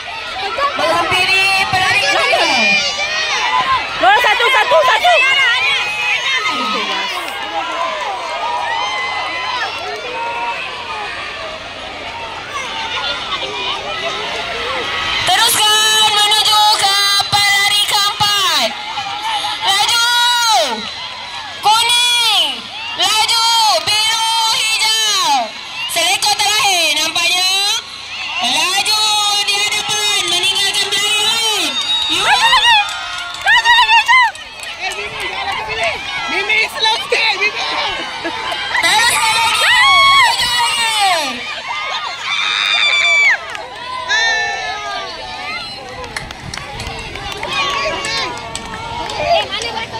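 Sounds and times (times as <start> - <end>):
crowd of children cheering: 0.0 - 49.9.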